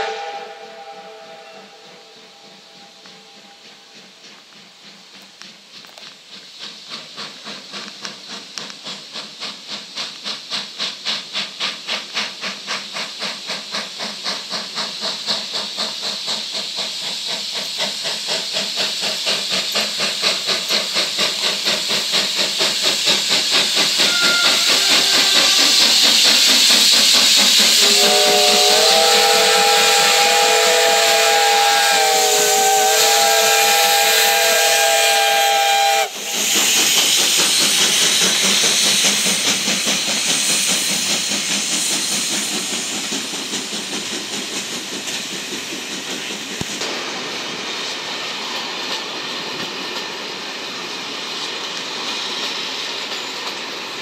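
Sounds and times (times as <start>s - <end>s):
steam whistle chord: 0.0s - 3.6s, 24.0s - 25.6s, 27.8s - 36.4s
steam hiss: 0.0s - 54.0s
steam locomotive exhaust beats: 0.0s - 54.0s.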